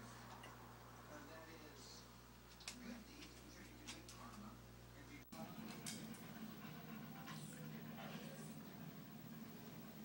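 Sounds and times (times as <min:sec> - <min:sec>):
low steady hum: 0:00.0 - 0:10.0
small dog panting: 0:05.6 - 0:09.9.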